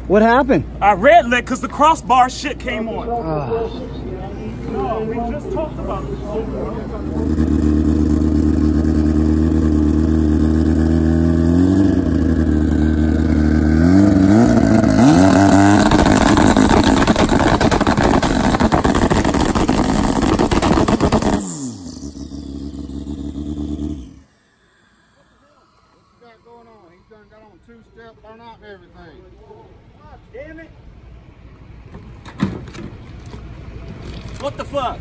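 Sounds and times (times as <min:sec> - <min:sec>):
motorcycle engine revving and crackling: 0:06.9 - 0:24.3.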